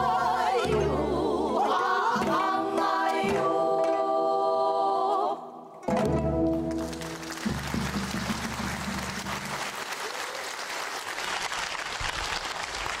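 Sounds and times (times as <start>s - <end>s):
audience applauding: 6.5s - 13.0s.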